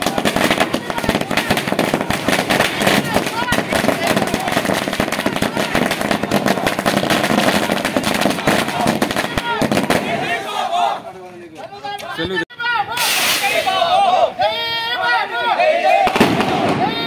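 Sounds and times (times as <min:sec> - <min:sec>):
firecrackers bursting: 0:00.0 - 0:10.5, 0:13.0 - 0:13.7, 0:16.0 - 0:17.0
people's voices: 0:00.0 - 0:17.0.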